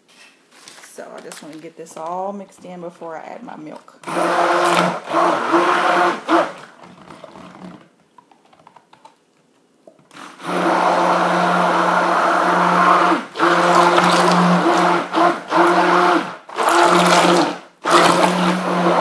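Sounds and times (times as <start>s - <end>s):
stick blender running: 4.0s - 7.8s, 10.1s - 19.0s.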